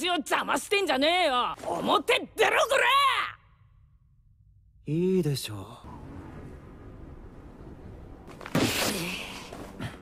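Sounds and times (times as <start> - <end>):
woman shouting: 2.0 - 3.4.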